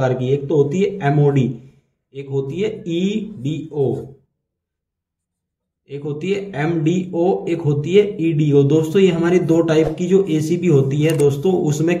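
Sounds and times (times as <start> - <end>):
man speaking: 0.0 - 4.3, 5.9 - 12.0.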